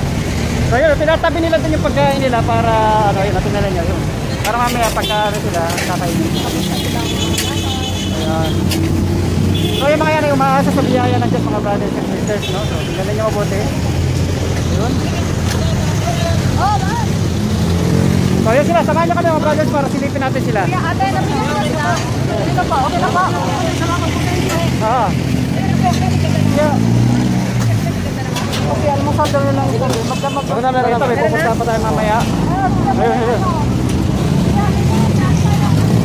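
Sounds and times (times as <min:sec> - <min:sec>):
vehicle engines humming: 0:00.0 - 0:36.0
people talking: 0:00.7 - 0:08.9, 0:09.6 - 0:17.3, 0:18.4 - 0:36.0.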